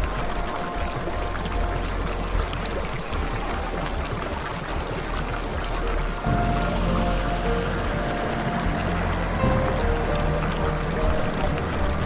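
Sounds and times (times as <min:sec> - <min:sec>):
water trickling over stones: 0:00.0 - 0:12.0.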